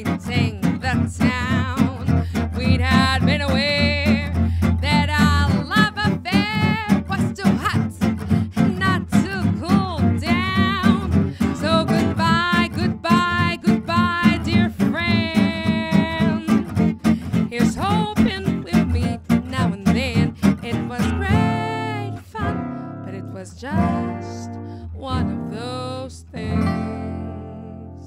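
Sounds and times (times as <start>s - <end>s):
jazz on acoustic guitars: 0.0s - 28.0s.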